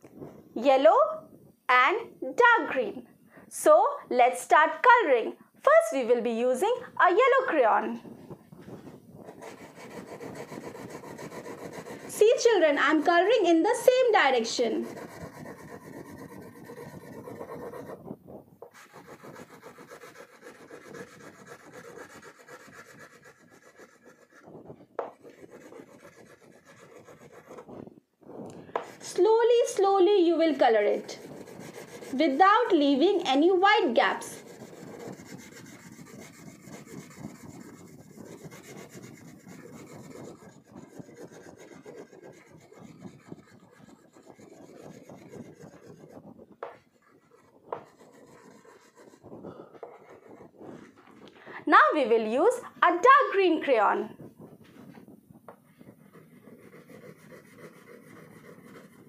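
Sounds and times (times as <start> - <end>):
crayon rubbing on paper: 8.7 - 18.1, 18.7 - 27.8, 28.8 - 51.2, 53.4 - 59.0.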